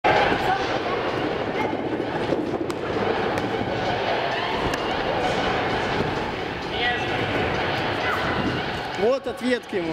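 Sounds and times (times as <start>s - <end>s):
background hubbub: 0.0s - 9.9s
indistinct chatter of voices: 0.0s - 9.9s.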